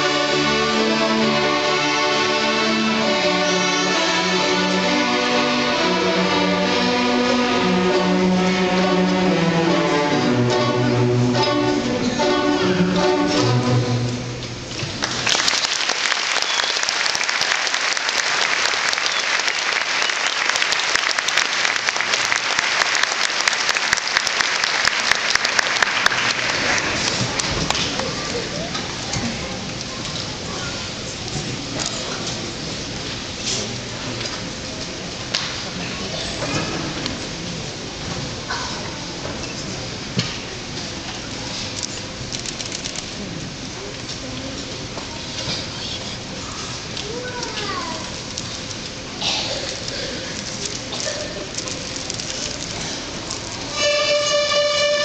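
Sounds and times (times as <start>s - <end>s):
audience applauding: 14.9s - 28.4s.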